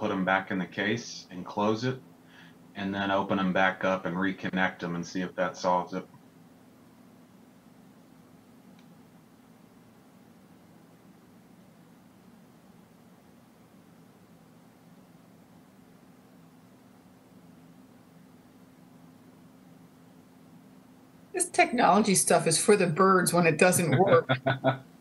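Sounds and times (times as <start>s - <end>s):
faint low hum and hiss: 0.0s - 25.0s
faint tick: 8.7s - 8.9s.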